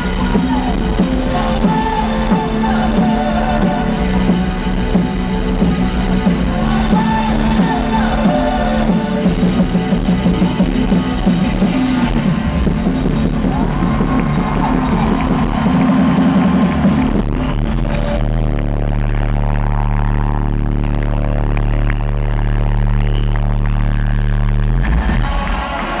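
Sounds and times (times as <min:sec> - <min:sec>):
live rock band playing: 0:00.0 - 0:18.5.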